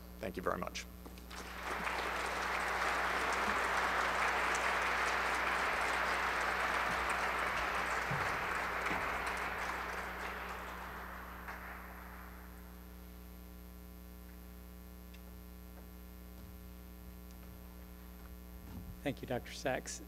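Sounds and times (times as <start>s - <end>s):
audience applauding: 1.2s - 13.0s.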